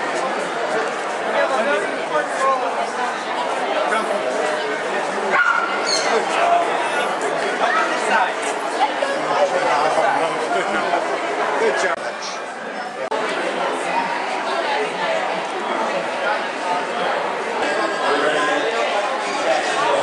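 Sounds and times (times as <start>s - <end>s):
crowd chatter: 0.0s - 20.0s.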